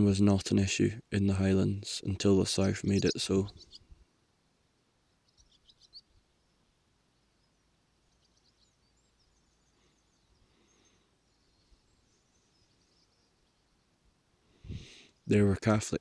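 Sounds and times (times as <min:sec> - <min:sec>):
faint bird chirps: 0:02.5 - 0:04.0, 0:05.0 - 0:15.6.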